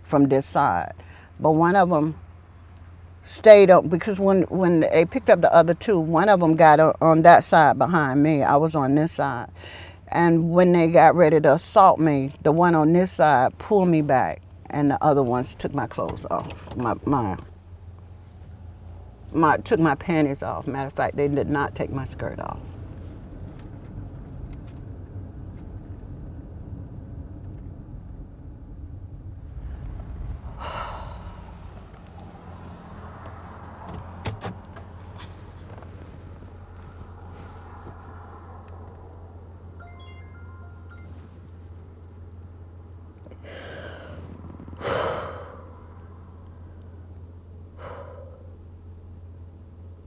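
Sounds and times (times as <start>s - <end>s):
low hum in car cabin: 0.0s - 50.0s
woman sighing: 30.6s - 31.6s, 43.4s - 44.2s, 44.8s - 45.8s.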